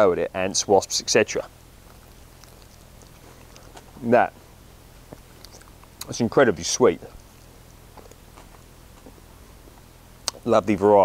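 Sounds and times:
chewing fruit: 1.6s - 6.2s, 7.1s - 10.4s
soft mouth ticks: 1.8s - 3.9s, 5.0s - 6.1s, 10.2s - 10.4s.

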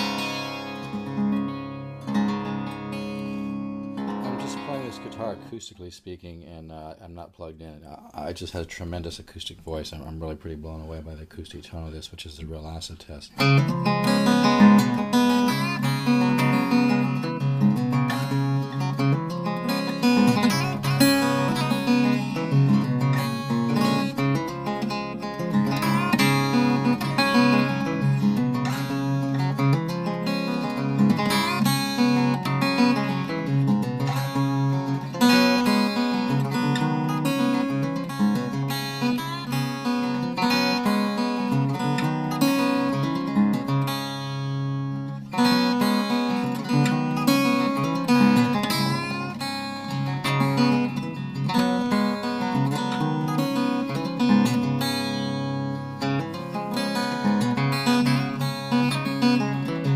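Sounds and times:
unplugged guitar strumming chords: 0.0s - 5.8s, 13.4s - 59.9s.

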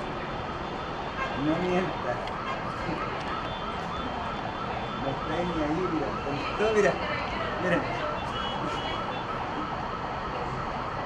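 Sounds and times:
emergency sirens wailing: 0.0s - 11.0s.

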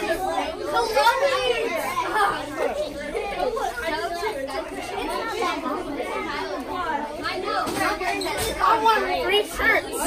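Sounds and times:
children chattering excitedly: 0.0s - 10.0s.

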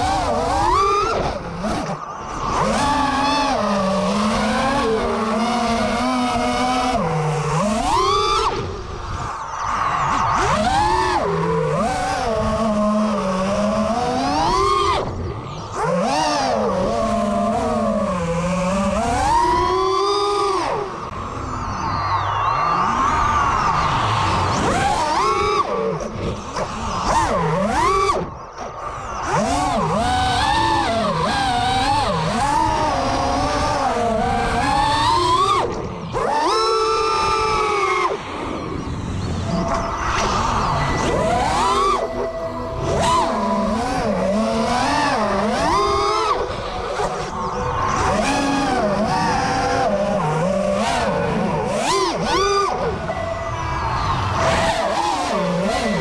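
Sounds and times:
quadcopter motors whining: 0.0s - 56.0s.

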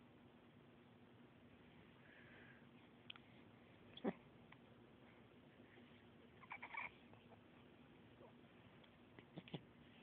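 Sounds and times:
faint steady hum: 0.0s - 10.0s
baby squeaky coos: 6.4s - 7.0s.

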